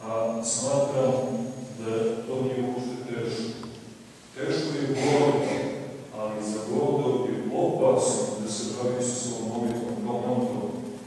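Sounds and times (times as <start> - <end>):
man speaking: 0.0 - 3.6, 4.3 - 10.9.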